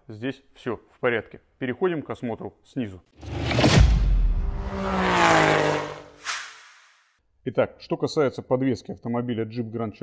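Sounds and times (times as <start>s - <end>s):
car engine zooming past: 3.2s - 6.8s
short whoosh: 3.2s - 7.0s.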